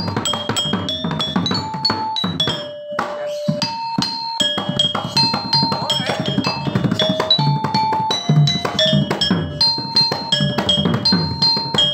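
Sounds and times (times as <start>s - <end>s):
metallophone melody struck with mallet: 0.0s - 11.9s.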